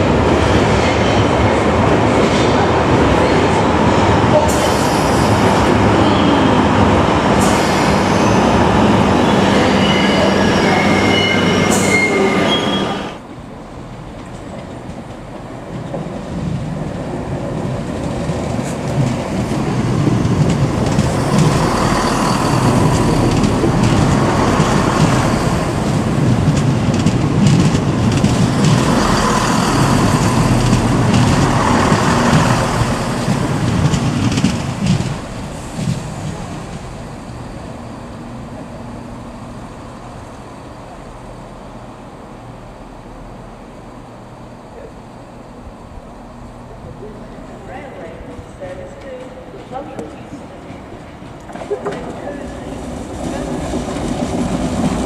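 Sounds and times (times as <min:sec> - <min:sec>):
electric train rumble: 0:00.0 - 0:55.0
underground train running: 0:00.0 - 0:55.0
thin high squeals: 0:09.6 - 0:13.1.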